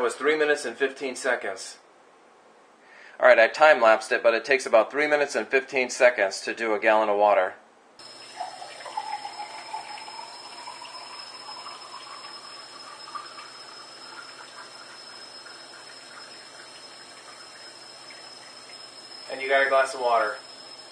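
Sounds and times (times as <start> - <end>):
rising tone of filling glass: 8.0 - 20.9
water stream pouring into a glass: 8.0 - 20.9.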